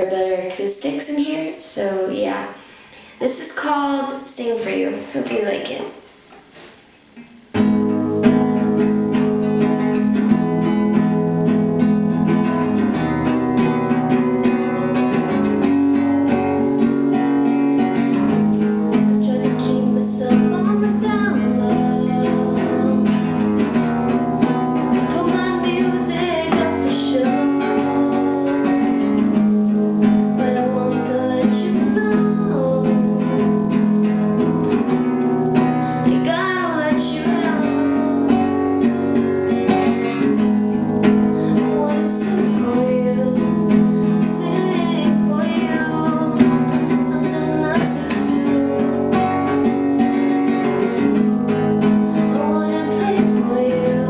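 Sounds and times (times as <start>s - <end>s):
acoustic guitar strumming chords: 7.2s - 54.0s.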